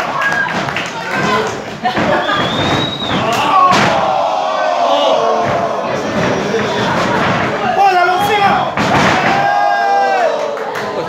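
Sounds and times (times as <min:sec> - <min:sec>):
wrestling strikes smacking: 0:00.5 - 0:10.0
crowd shouting: 0:02.2 - 0:11.0.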